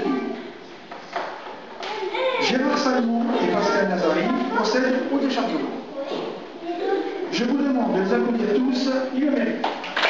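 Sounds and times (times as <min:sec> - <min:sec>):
man speaking through microphone: 0:02.4 - 0:05.8, 0:07.3 - 0:09.6.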